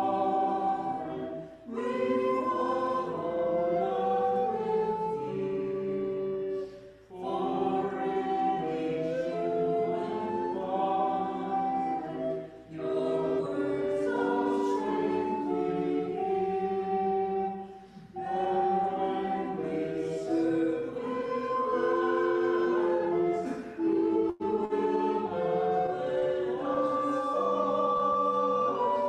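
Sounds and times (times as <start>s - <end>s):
group singing a hymn: 0.0s - 29.0s.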